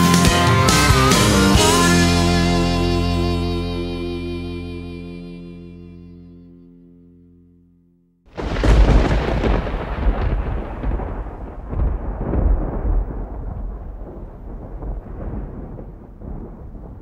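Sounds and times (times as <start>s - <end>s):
thunder rumbling and crackling: 8.3s - 17.0s.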